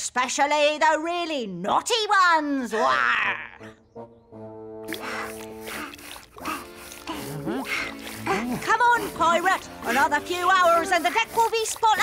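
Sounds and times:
background music: 2.6s - 12.0s
scrubbing brush on wet stone: 4.9s - 12.0s.

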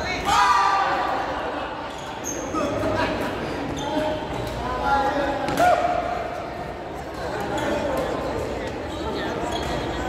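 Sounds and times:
echoing voices and chatter: 0.0s - 10.0s.

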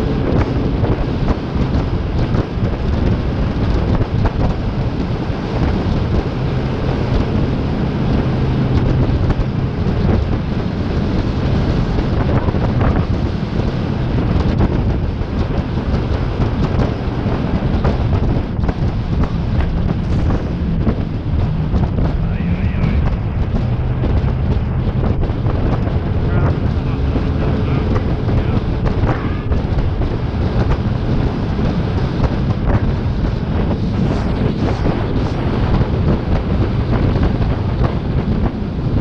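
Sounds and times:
boat engine running: 0.0s - 39.0s
rushing water: 0.0s - 39.0s
wind buffeting the microphone: 0.0s - 39.0s.

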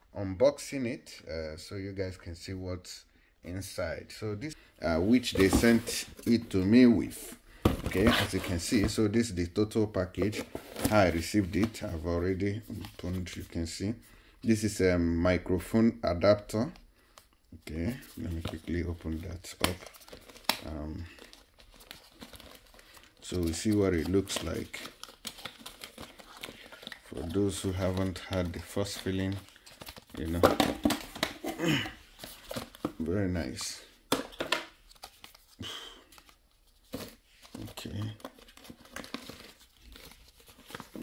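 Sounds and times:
paper packing crinkling: 17.8s - 33.7s, 34.8s - 41.0s.

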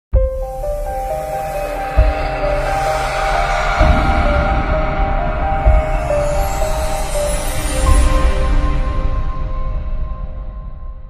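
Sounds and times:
heavy low hit: 1.4s - 8.2s.

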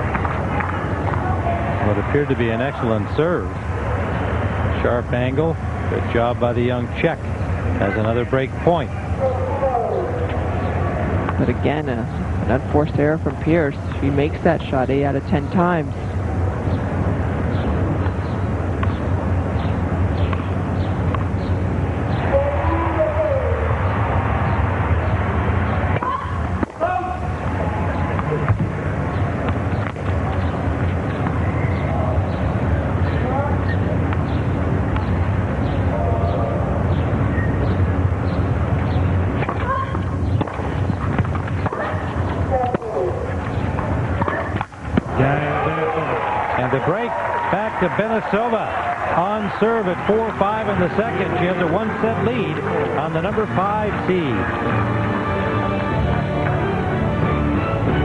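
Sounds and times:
crowd murmuring: 41.6s - 58.0s.

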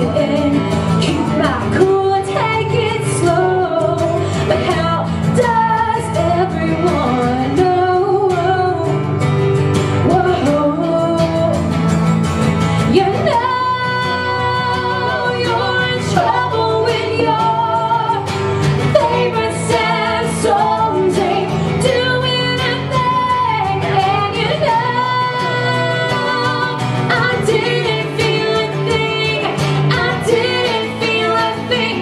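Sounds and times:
woman singing: 0.0s - 12.0s, 12.8s - 32.0s
strummed acoustic guitar: 0.0s - 32.0s.

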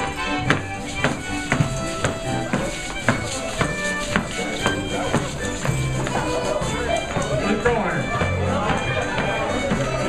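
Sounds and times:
dance band with fiddles: 0.0s - 10.0s.

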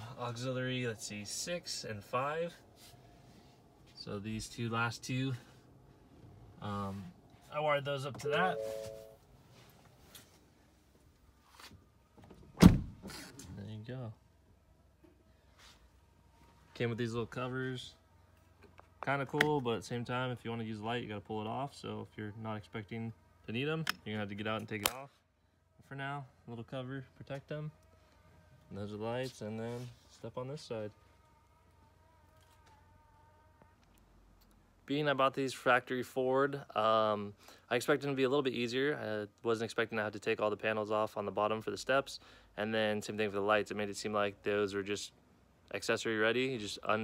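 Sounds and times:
faint high hum: 0.0s - 9.7s.

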